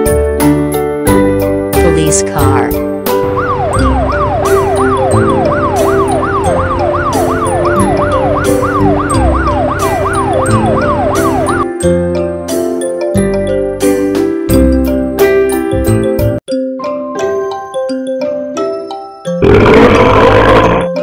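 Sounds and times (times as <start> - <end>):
police siren: 3.1 - 11.7.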